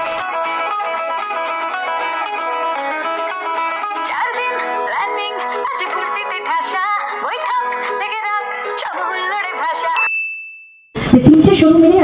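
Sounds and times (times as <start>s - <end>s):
music: 0.0s - 10.0s
high-pitched ding: 10.0s - 11.0s.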